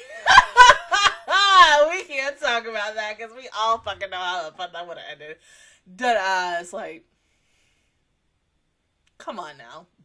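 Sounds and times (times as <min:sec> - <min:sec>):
woman laughing loudly: 0:00.0 - 0:01.8.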